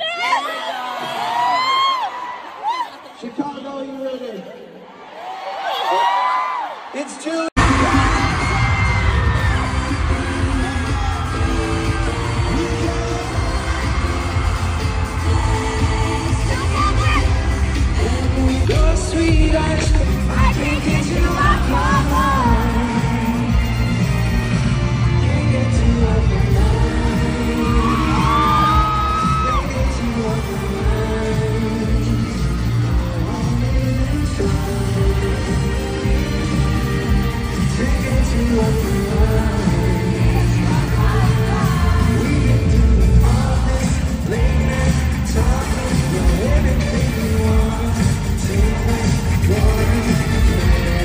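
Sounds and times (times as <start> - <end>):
man singing into microphone: 7.0 - 16.5, 17.7 - 24.1, 24.9 - 51.0
live pop band playing: 7.6 - 51.0.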